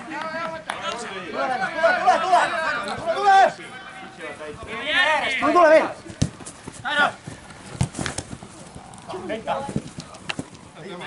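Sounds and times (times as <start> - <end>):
footballers shouting: 0.0 - 9.8
sharp thuds of play: 6.0 - 8.6.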